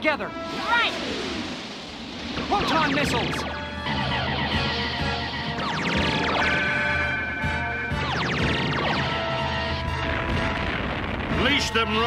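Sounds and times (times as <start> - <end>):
missile and laser sound effects: 1.0 - 7.0, 7.9 - 9.5.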